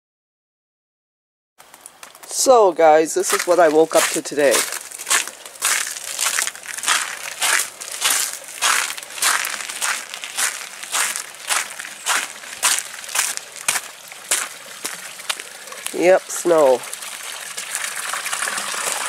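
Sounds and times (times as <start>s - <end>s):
footsteps crunching on snow: 3.2s - 16.8s.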